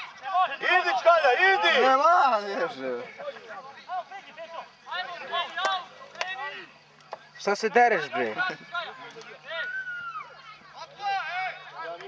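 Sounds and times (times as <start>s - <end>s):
distant shouting: 0.0s - 12.0s.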